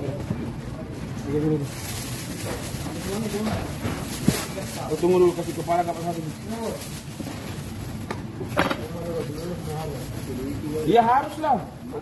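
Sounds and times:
busy background noise: 0.0 - 12.0.

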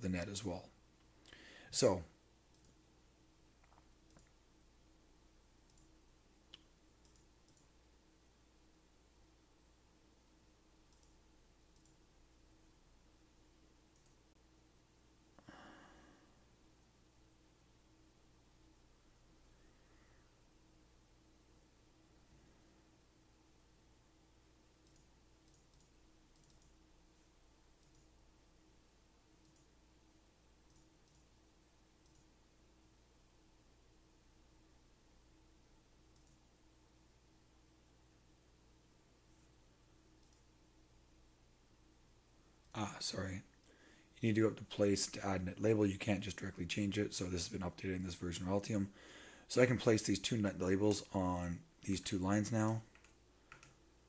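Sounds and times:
faint steady hum: 0.0 - 54.0
computer mouse clicks: 2.5 - 2.8, 3.6 - 4.4, 5.7 - 5.9, 6.5 - 7.7, 10.9 - 12.0, 13.9 - 14.2, 24.8 - 26.8, 27.8 - 28.1, 29.4 - 29.7, 30.7 - 31.3, 32.0 - 32.3, 36.1 - 36.4, 40.2 - 40.5, 52.6 - 53.8.

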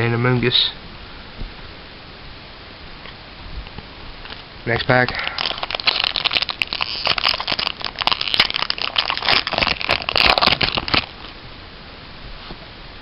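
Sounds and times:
foil wrapper tearing and crinkling: 4.9 - 11.4.

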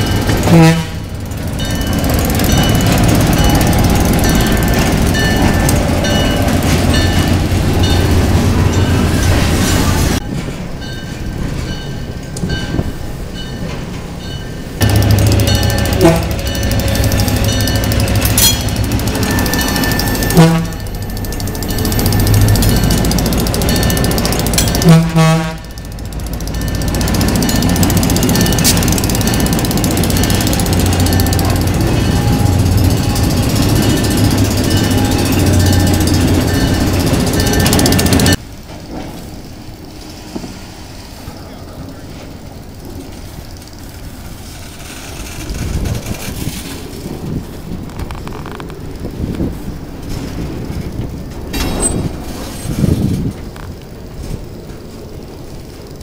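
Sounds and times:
diesel locomotive passing: 0.0 - 56.0
freight cars rolling: 0.0 - 56.0
wheels and couplers clanking: 0.0 - 56.0.

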